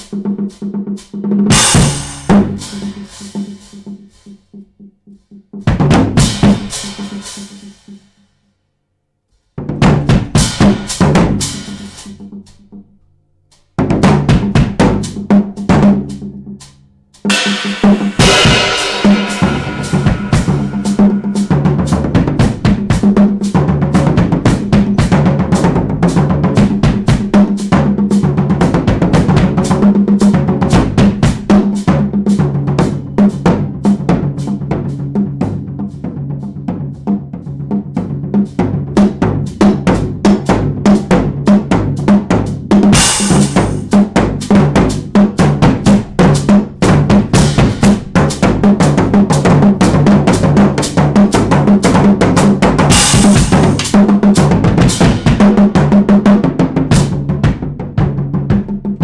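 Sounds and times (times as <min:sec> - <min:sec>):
drum kit groove: 0:00.0 - 0:08.2, 0:09.5 - 0:12.8, 0:13.5 - 0:59.0
cymbal crashes: 0:01.5 - 0:03.4, 0:17.3 - 0:22.6.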